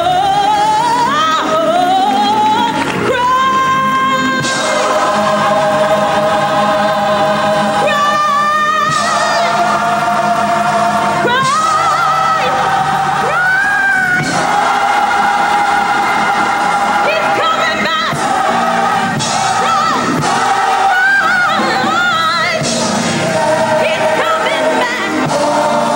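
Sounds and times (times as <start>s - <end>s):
choir singing: 0.0s - 25.9s
low musical accompaniment: 0.0s - 25.9s
woman singing with vibrato: 0.0s - 25.9s.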